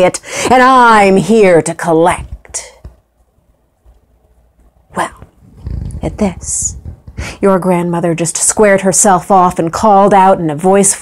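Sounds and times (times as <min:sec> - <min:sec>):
woman speaking: 0:00.0 - 0:02.8, 0:04.9 - 0:11.0
faint low room hum: 0:00.0 - 0:11.0.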